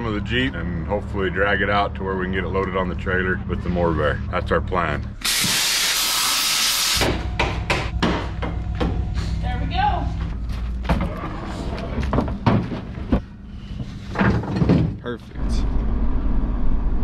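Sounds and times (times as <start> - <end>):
hand tool hissing through steel: 5.2 - 7.0
metal knocks and clatters: 12.0 - 15.2.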